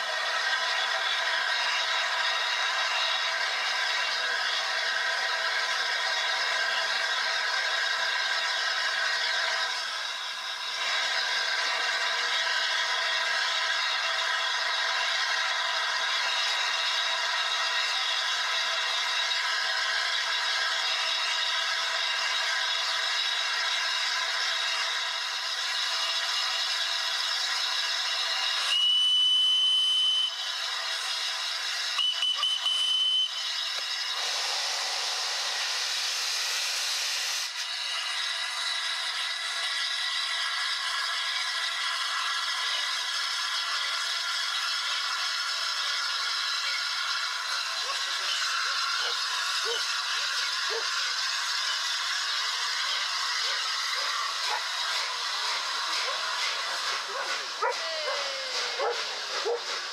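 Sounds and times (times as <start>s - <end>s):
steam hissing: 0.0s - 59.9s
high-pitched whistle blasts: 28.6s - 30.5s, 31.9s - 33.7s.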